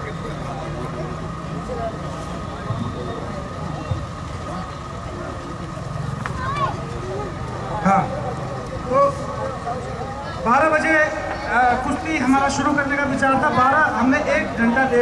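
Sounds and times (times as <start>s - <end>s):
spectators calling and shouting: 0.0s - 15.0s.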